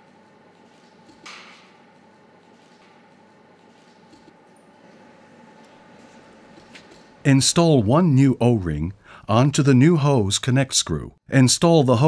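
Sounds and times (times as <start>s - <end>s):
faint steady hum: 3.4s - 10.3s.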